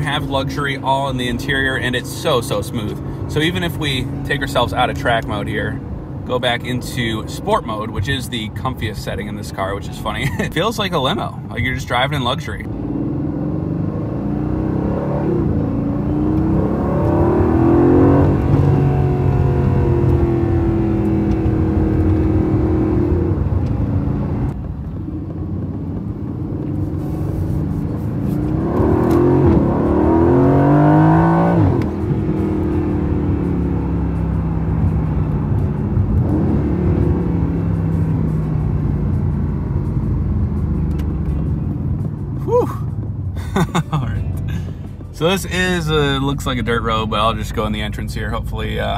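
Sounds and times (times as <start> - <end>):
car engine accelerating: 0.0 - 48.9.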